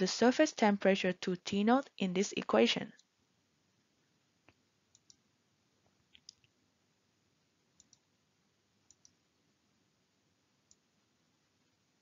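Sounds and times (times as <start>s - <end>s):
faint sharp clicks: 4.4s - 5.2s, 7.8s - 8.1s, 8.9s - 9.2s.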